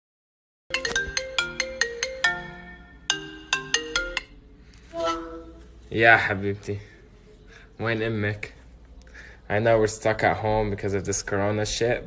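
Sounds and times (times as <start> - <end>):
mobile phone ringtone: 0.7 - 4.3.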